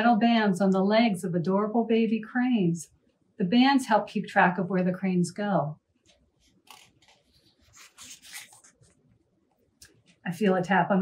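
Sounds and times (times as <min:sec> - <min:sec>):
book page turning: 0:06.1 - 0:09.0.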